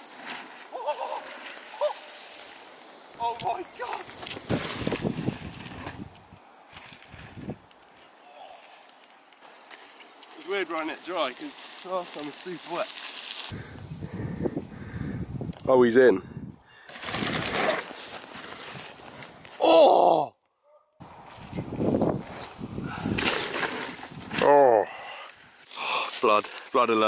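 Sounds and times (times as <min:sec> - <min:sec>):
bike tyres crunching over dirt: 0:00.0 - 0:14.0, 0:16.8 - 0:19.6, 0:21.0 - 0:27.0.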